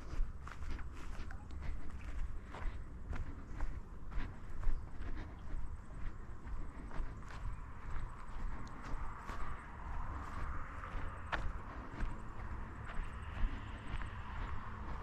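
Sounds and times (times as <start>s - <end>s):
footsteps crunching on a track: 0.0s - 15.0s.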